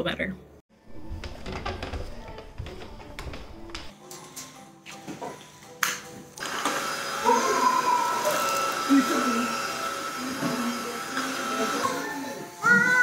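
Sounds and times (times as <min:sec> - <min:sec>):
background music: 0:00.0 - 0:13.0
vacuum cleaner whine: 0:06.4 - 0:12.7.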